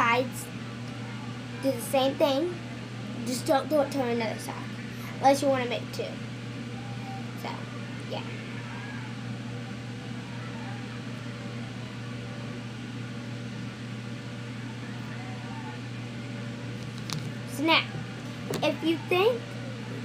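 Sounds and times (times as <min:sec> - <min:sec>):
steady low appliance hum: 0:00.0 - 0:20.0.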